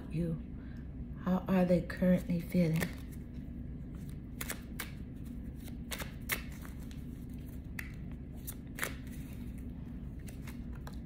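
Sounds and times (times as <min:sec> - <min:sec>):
low steady hum: 0:00.0 - 0:11.0
cards being shuffled: 0:02.6 - 0:11.0
crisp card snaps: 0:02.7 - 0:03.2, 0:04.3 - 0:05.0, 0:05.6 - 0:07.0, 0:07.6 - 0:09.3.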